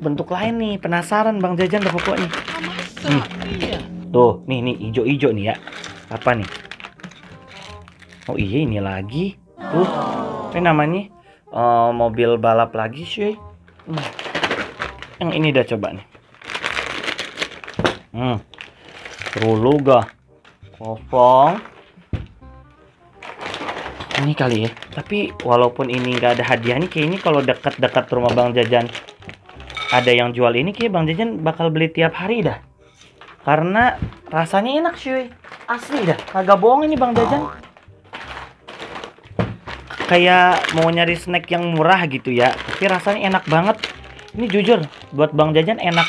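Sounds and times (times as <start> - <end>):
plastic snack bag crinkling: 0.9 - 4.1, 5.2 - 9.0, 13.6 - 22.0, 23.1 - 31.0, 32.9 - 46.0.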